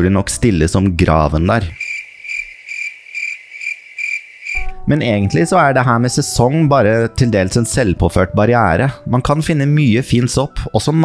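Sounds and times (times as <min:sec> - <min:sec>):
cricket chirping: 0:01.8 - 0:04.7.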